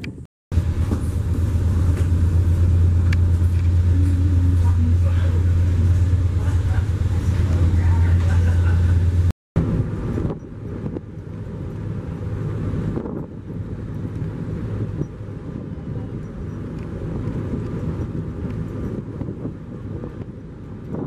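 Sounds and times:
low engine drone: 0.0 - 21.0
wind rushing over microphone: 0.0 - 21.0.

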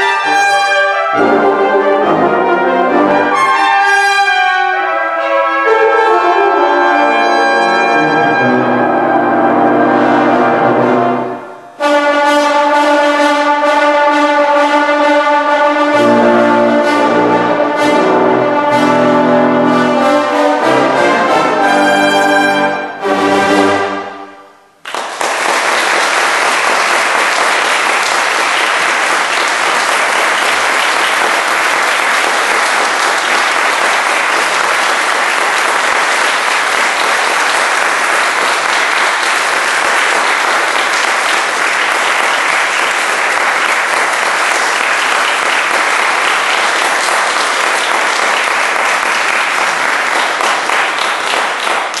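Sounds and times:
audience applauding: 24.8 - 52.0.

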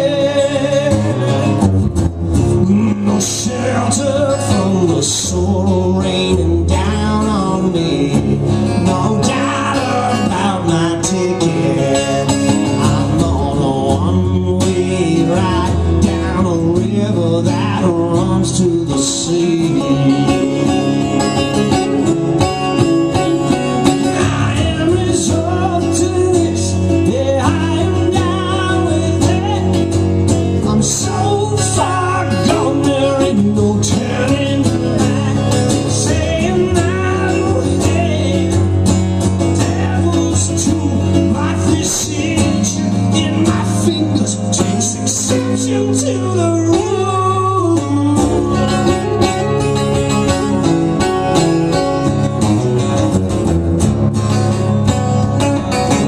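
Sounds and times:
two acoustic guitars playing: 0.0 - 56.0.

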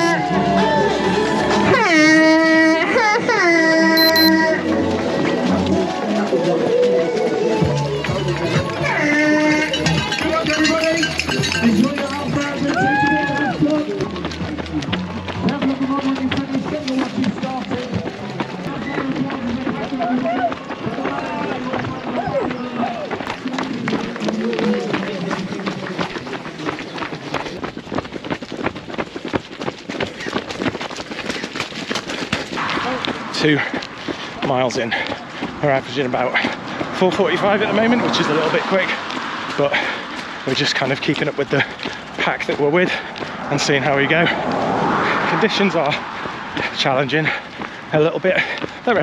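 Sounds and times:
spectators cheering: 0.0 - 1.7, 12.6 - 15.8
runners' footsteps on wet path: 4.0 - 49.0.

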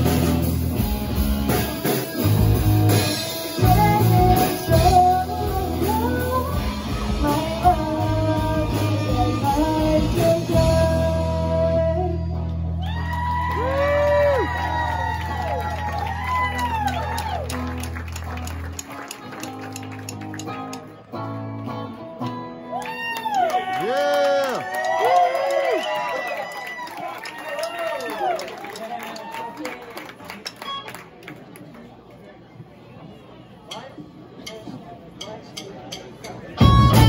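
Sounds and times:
drums: 0.0 - 23.4, 33.7 - 37.0
bass guitar: 0.0 - 23.5, 36.5 - 37.0
electric guitars: 0.0 - 24.7, 36.6 - 37.0
woman singing: 3.5 - 12.5.

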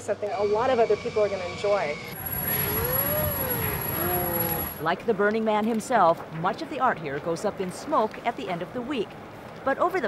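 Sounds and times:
low held tones: 2.0 - 4.8
moan-like tone: 2.2 - 4.8.

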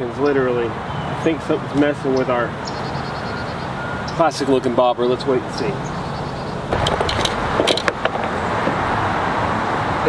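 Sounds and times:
steady rushing noise: 6.6 - 10.0.

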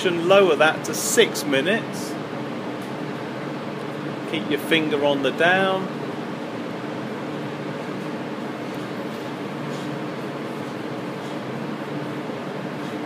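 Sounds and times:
fans humming: 0.0 - 13.0.

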